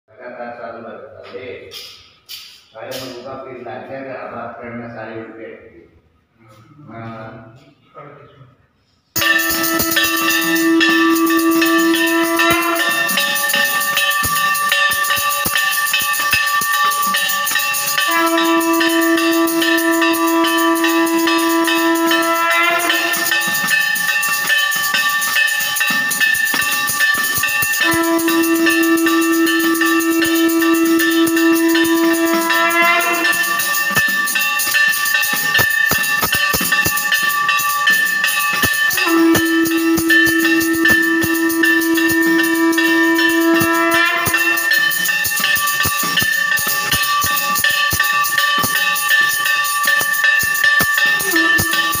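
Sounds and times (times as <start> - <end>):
drum strikes: 1.3 - 3.5, 9.2 - 52.0
long horn-like note: 9.2 - 13.1, 18.1 - 23.3, 27.8 - 33.6, 39.0 - 44.7
bells ringing fast: 9.2 - 52.0.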